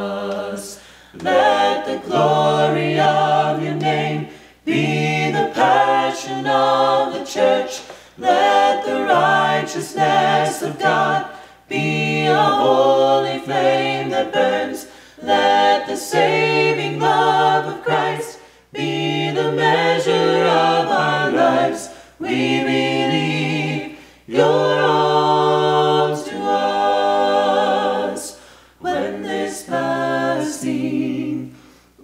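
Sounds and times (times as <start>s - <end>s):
group singing a cappella harmony: 0.0s - 32.0s.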